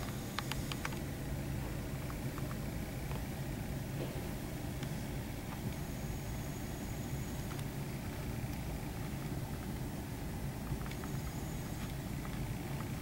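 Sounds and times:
faint ticks: 0:10.6 - 0:13.0.

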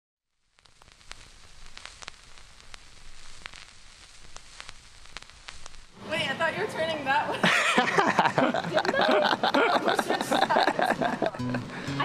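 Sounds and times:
faint hiss: 0:00.3 - 0:12.0
sharp crackling clicks: 0:00.4 - 0:06.0.

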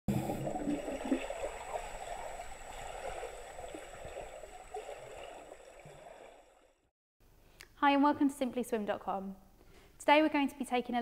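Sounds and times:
underwater rushing and bubbling: 0:00.1 - 0:06.8.

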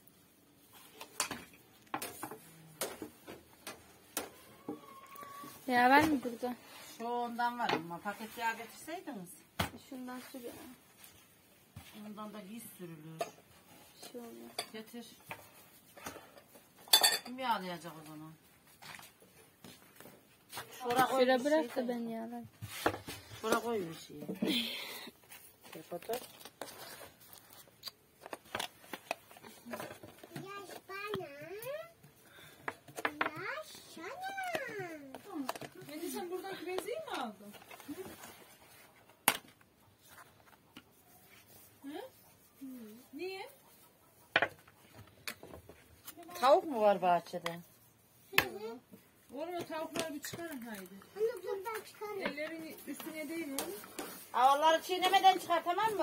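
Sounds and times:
dishes and utensils clinking: 0:16.8 - 0:17.4
dishes clattering: 0:16.8 - 0:17.4.

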